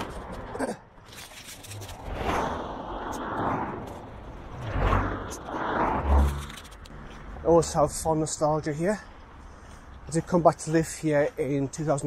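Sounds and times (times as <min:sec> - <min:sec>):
cars passing: 0:00.0 - 0:12.0.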